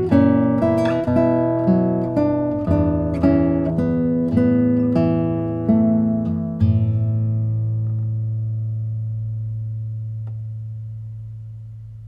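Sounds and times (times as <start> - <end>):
classical guitar chord ringing: 0.0 - 12.0.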